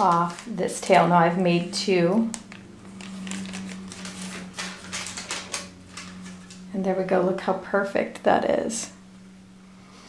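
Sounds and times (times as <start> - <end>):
thin sheet crinkling and crackling: 0.0 - 6.8
low steady hum: 0.0 - 10.0.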